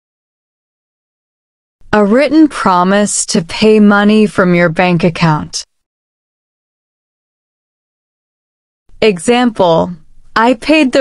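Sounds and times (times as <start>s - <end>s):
person narrating: 2.0s - 5.6s, 9.0s - 11.0s.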